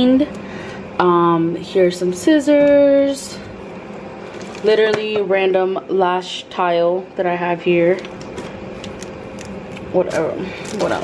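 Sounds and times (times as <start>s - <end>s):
plastic items clicking and rustling: 10.1s - 11.0s.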